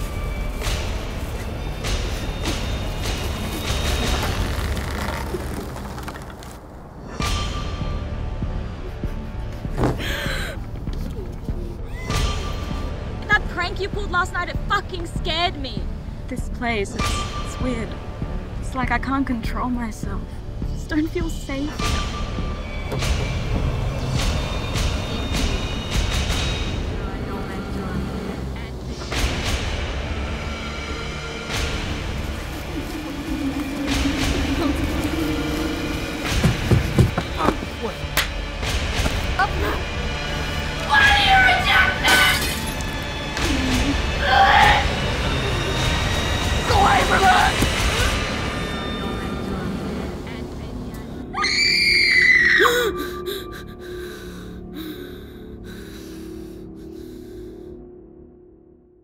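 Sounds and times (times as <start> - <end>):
low rumbling drone: 15.8 - 40.9, 42.7 - 51.4
woman screaming: 51.3 - 53.2.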